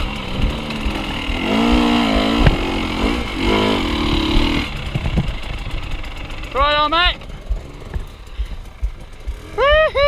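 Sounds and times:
dirt bike engine at low revs: 0.0s - 10.0s
dull low thumps: 0.0s - 10.0s.

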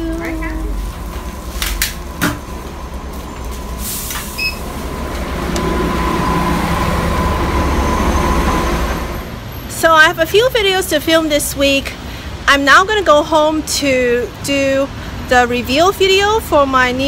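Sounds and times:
large vehicle engine running: 0.0s - 17.0s
street traffic: 0.0s - 17.0s.

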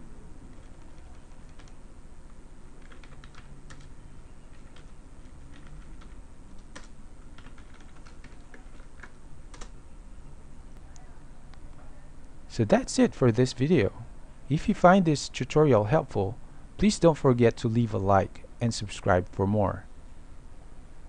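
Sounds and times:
faint low hum: 0.0s - 21.0s.

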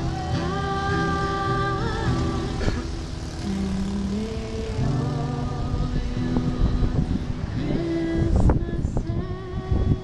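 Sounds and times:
strummed acoustic guitar: 0.0s - 10.0s
woman singing: 0.0s - 10.0s.

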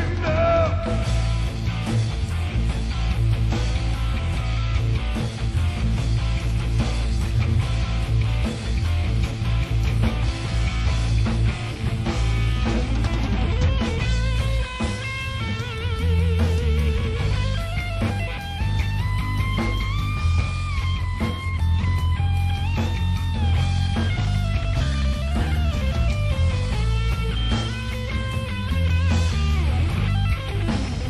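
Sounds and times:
bass guitar: 0.0s - 31.0s
drums: 0.0s - 31.0s
electric guitar lead: 0.0s - 31.0s.

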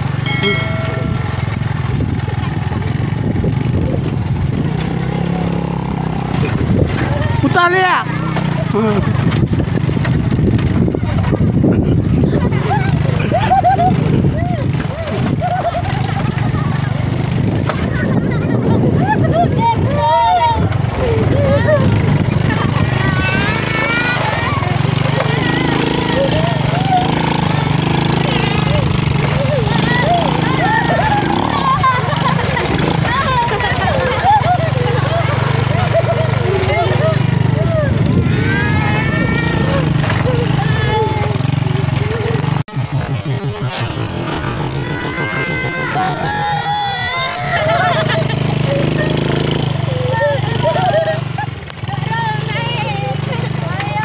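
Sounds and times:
small motorcycle engine running: 0.0s - 54.0s
children calling out: 17.7s - 54.0s.

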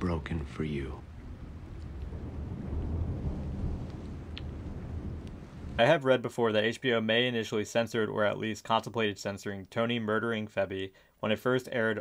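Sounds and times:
distant thunder rumbling: 0.0s - 6.0s
rain hissing: 0.0s - 6.1s.

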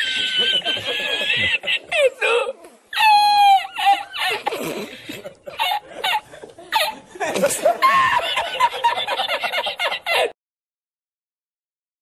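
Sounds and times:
people laughing and snickering: 0.0s - 10.4s.

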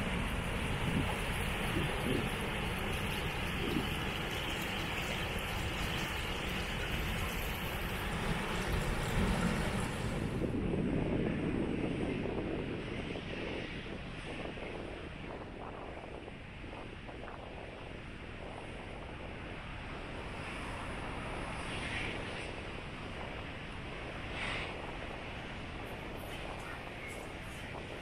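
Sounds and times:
low rumble: 0.0s - 12.3s
wind on microphone: 0.0s - 28.0s.

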